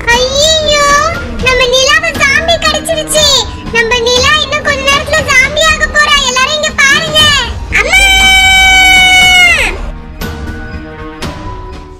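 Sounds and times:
long held scream: 0:07.8 - 0:09.8.

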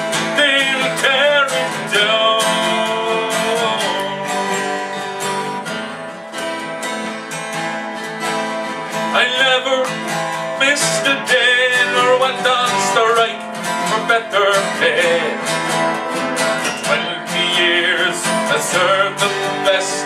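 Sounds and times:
acoustic guitars strumming: 0:00.0 - 0:20.0.

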